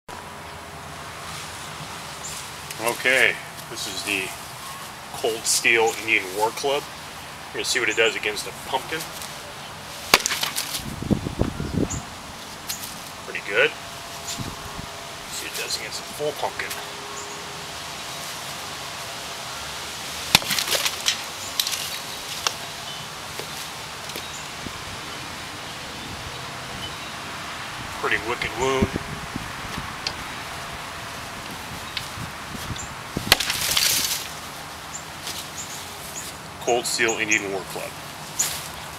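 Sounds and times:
club smacking pumpkin: 10.1s - 10.8s, 20.3s - 21.0s, 33.2s - 33.9s.

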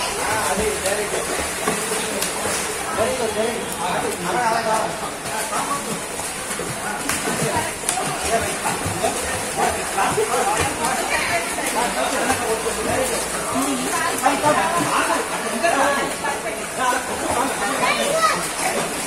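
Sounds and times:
water splashing in pool: 0.0s - 19.0s
children's voices: 17.6s - 19.0s.

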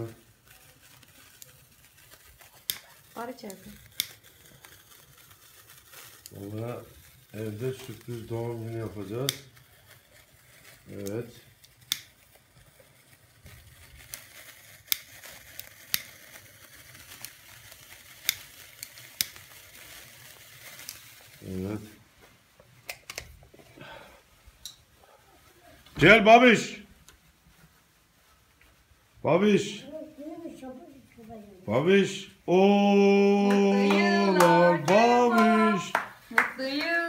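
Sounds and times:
sparkler candle fizzing: 0.0s - 37.0s.

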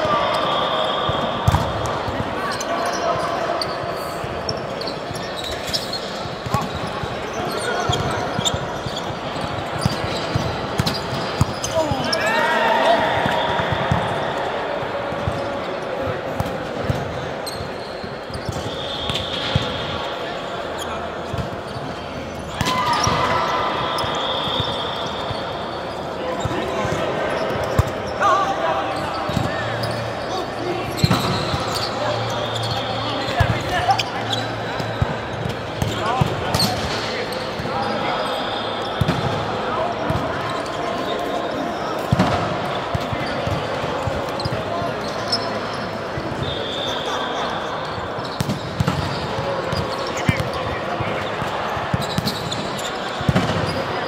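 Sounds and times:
sneakers squeaking: 0.0s - 14.3s, 14.9s - 54.0s
players calling out: 0.0s - 16.1s
volleyball struck and bouncing: 1.4s - 2.0s.

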